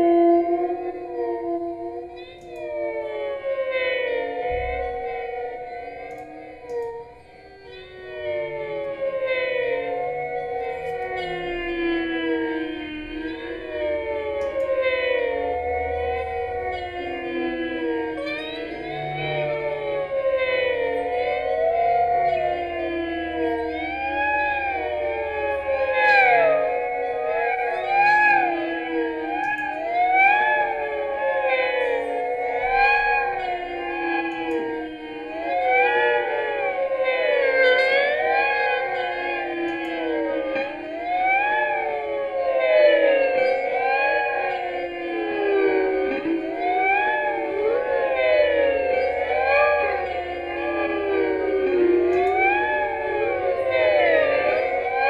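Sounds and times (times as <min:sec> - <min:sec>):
electric guitar with gliding tones: 0:00.0 - 0:55.0.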